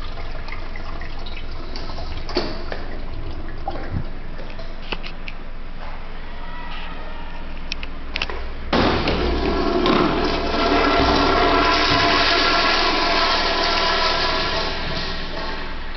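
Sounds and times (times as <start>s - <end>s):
urinal flushing water rush: 0.0s - 4.7s, 8.8s - 15.9s.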